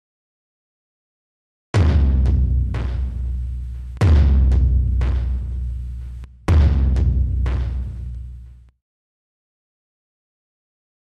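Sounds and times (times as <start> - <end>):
heavy drum hit: 1.8 - 5.6, 6.5 - 8.0
drum hits ringing out: 1.8 - 8.1.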